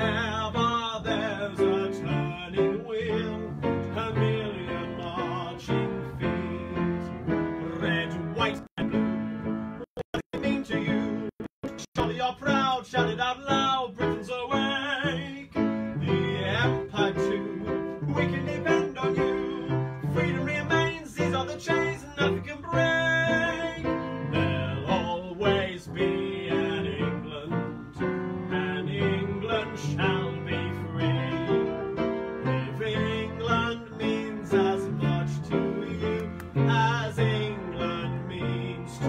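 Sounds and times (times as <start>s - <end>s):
upright piano playing old-time tune: 0.0s - 39.0s.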